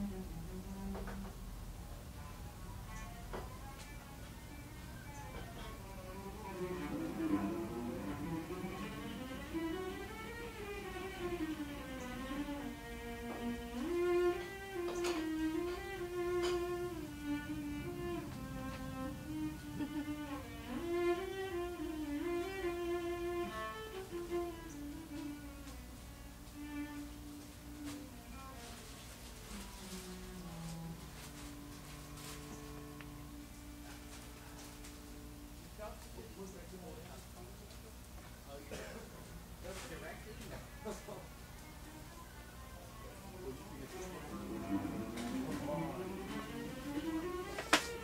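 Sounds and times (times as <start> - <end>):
slow bowed string melody: 0.0 - 36.0, 43.0 - 48.0.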